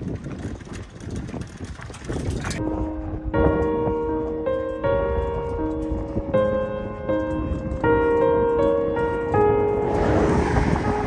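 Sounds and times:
wind buffeting microphone: 0.0 - 11.0
background music with held notes: 2.6 - 11.0.

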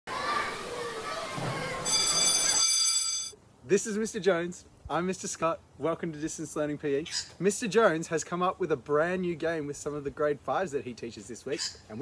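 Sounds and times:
children shouting at play: 0.1 - 2.6
bright ringing tone: 1.8 - 3.4.

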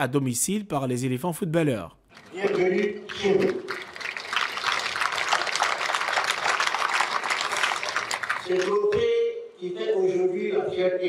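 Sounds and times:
man speaking into a microphone: 0.0 - 3.7, 8.5 - 11.0
crowd clapping: 2.1 - 8.8.

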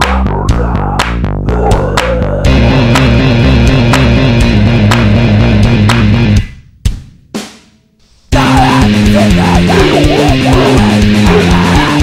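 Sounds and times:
rock band playing: 2.5 - 6.4, 8.3 - 12.0.

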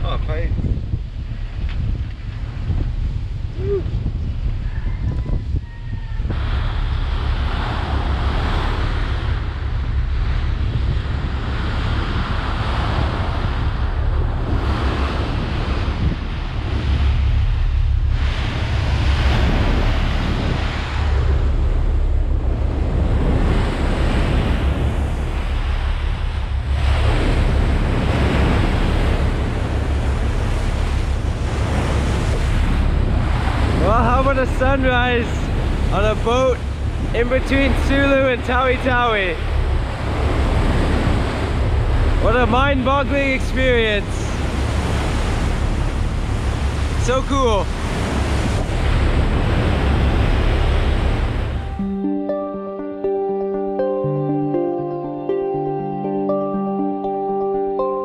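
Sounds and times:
wind buffeting microphone: 0.0 - 51.8
steady low rumble: 0.0 - 52.1
water splashing along ship hull: 6.2 - 51.8.

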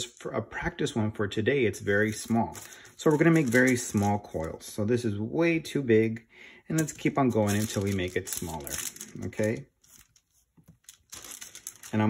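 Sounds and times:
paper crinkling and rustling: 2.0 - 4.7, 6.8 - 12.0.

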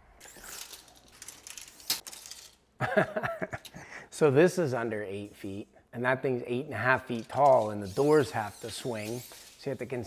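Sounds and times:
tape measure blade rattling: 0.2 - 2.6, 7.1 - 10.0.

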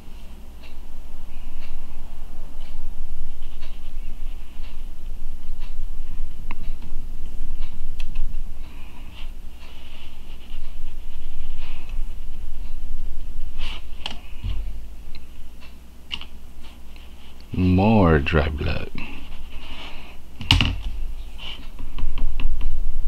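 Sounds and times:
low hum: 0.0 - 23.0.

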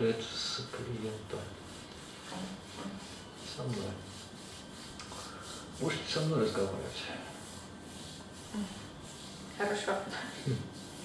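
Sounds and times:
hands rubbing on bare skin: 1.6 - 6.6.

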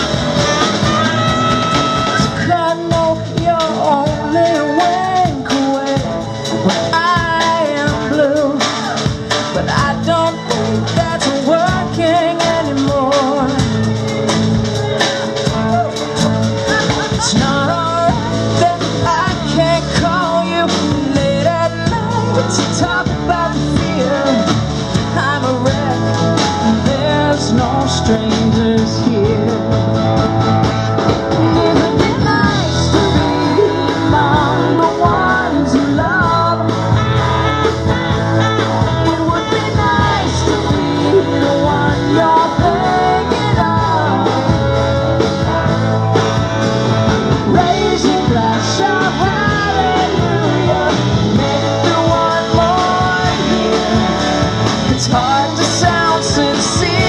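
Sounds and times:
bass: 0.0 - 57.0
drums keeping steady beat: 0.0 - 57.0
electric guitar: 0.0 - 57.0
person singing: 0.0 - 57.0.

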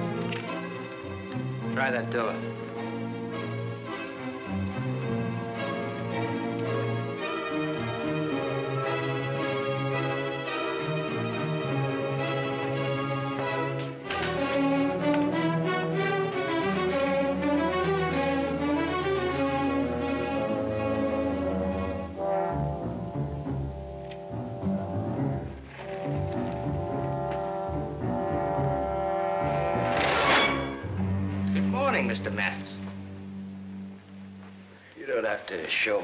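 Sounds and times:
orchestral music brass and strings: 0.0 - 36.0.

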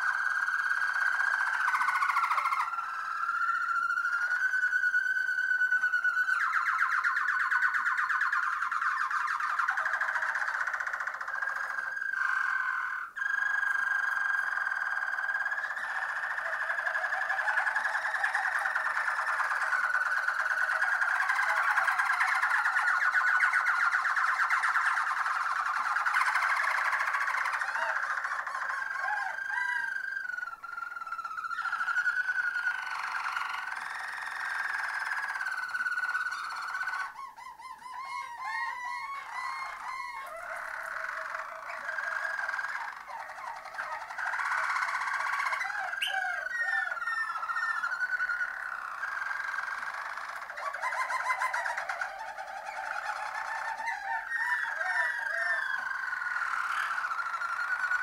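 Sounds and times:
canary singing trills: 0.0 - 58.0.

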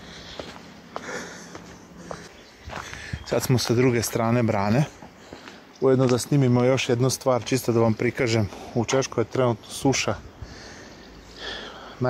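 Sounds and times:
person breathing: 0.0 - 3.3, 5.1 - 5.7, 10.4 - 12.0
footsteps on stone steps: 0.0 - 6.4.

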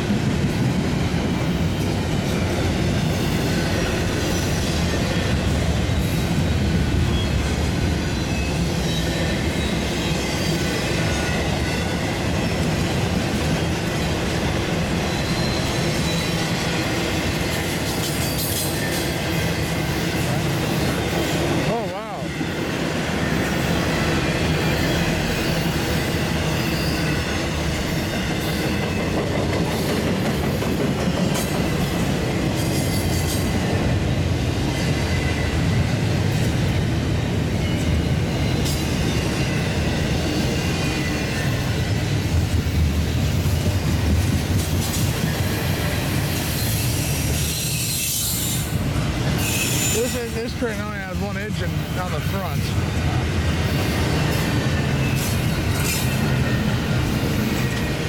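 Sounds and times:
freight train wheels rumbling: 0.0 - 58.0.

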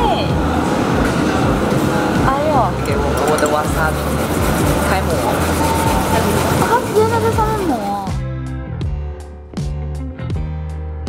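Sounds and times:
overlapping background voices: 0.2 - 8.2.

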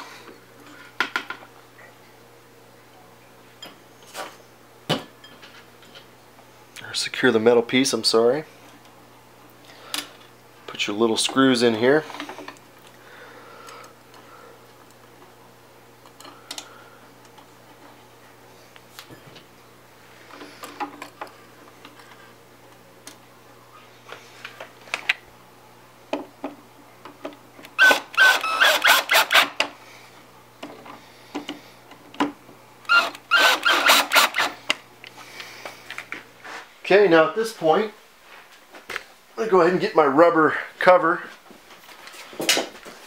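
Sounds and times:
powered screwdriver clicking: 27.8 - 29.6, 32.9 - 34.6.

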